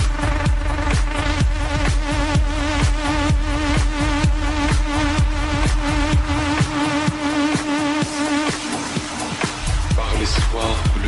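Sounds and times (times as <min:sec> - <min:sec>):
deep bass: 0:00.0 - 0:11.0
techno kick drum: 0:00.0 - 0:11.0.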